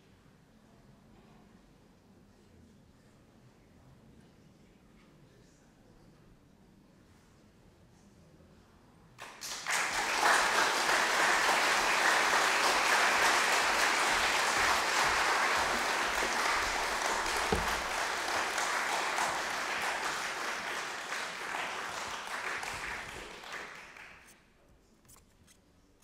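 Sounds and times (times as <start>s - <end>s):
audience applauding: 9.2s - 24.3s
low thump: 15.0s - 18.2s.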